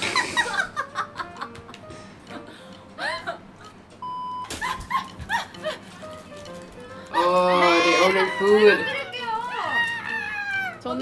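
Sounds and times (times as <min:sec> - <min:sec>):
light background music: 0:00.0 - 0:11.0
steady beep: 0:04.0 - 0:04.5
women's voices and squeals: 0:07.7 - 0:10.8.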